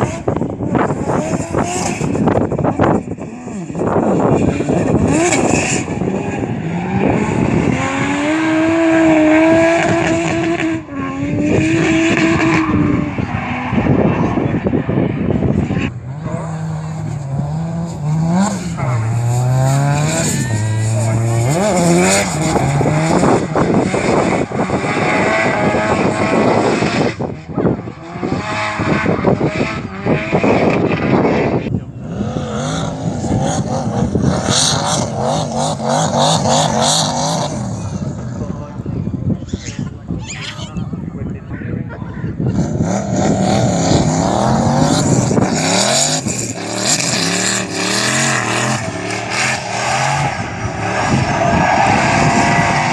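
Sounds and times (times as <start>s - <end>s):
car engine revving hard: 0.0s - 38.6s, 42.4s - 52.9s.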